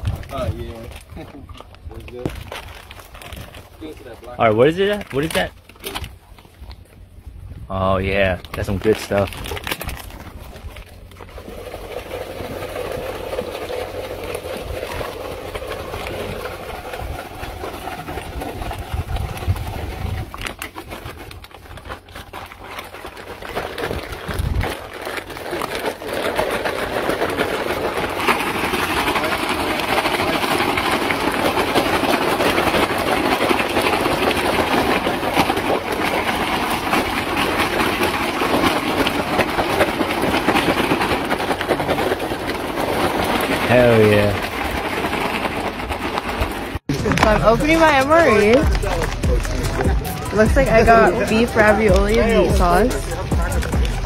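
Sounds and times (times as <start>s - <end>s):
water running into plastic bag: 0.0s - 7.0s, 7.9s - 54.0s.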